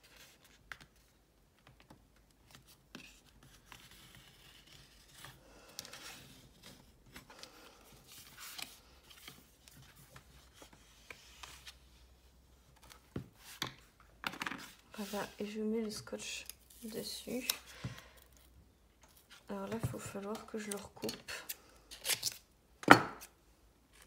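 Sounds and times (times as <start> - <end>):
paper rustling and scraping: 2.4 - 13.7.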